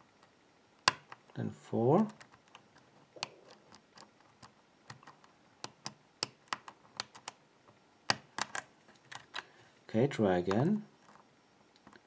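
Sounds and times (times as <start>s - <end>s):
lock pick metallic clicks: 2.0s - 7.4s, 8.1s - 9.4s.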